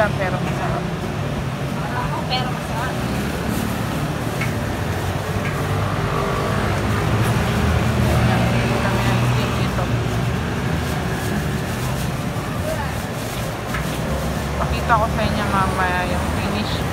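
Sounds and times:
passing vehicle engine rumble: 0:00.0 - 0:16.9
voices in background: 0:06.0 - 0:16.9.

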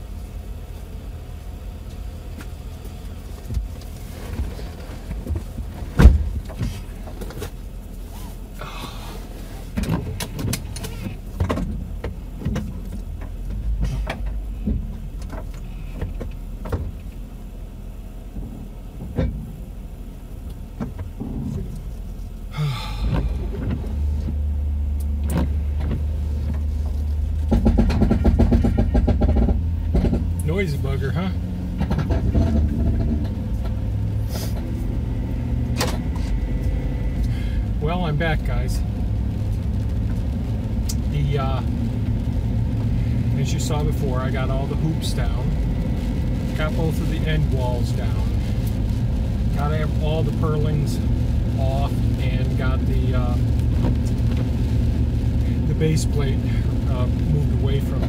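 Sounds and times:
pickup truck engine idling: 0:00.0 - 0:58.0
knocks and clicks: 0:27.4 - 0:30.5.

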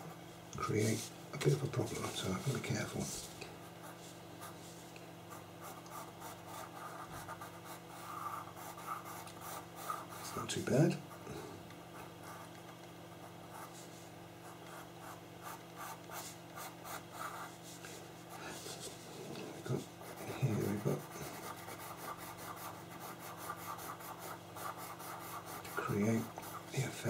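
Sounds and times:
pencil scratching on paper: 0:05.6 - 0:10.4, 0:13.5 - 0:17.9, 0:18.5 - 0:27.0.

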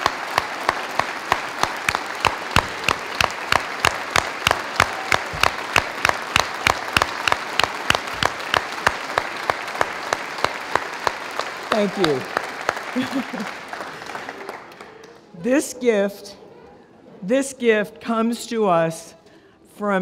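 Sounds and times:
sharp regular hand claps close by: 0:00.0 - 0:11.2
audience applauding: 0:00.0 - 0:15.3.

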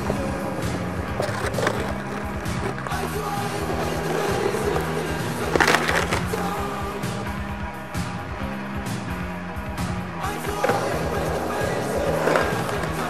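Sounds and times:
skateboard grinding on concrete curb: 0:00.0 - 0:08.8, 0:09.7 - 0:13.0
backing music: 0:00.0 - 0:13.0
skateboard wheels rolling on asphalt: 0:00.0 - 0:13.0.

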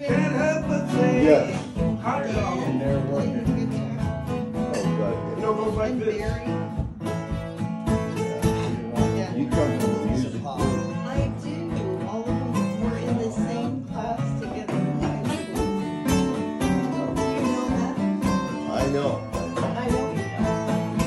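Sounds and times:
acoustic guitars strumming: 0:00.0 - 0:21.0.

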